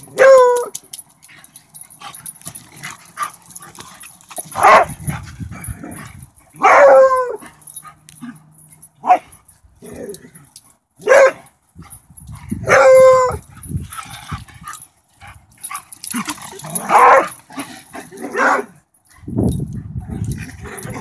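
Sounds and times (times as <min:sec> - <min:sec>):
dogs barking: 0:04.4 - 0:05.0, 0:06.6 - 0:07.4, 0:11.0 - 0:11.5, 0:12.6 - 0:13.4, 0:16.8 - 0:17.4, 0:18.1 - 0:18.8.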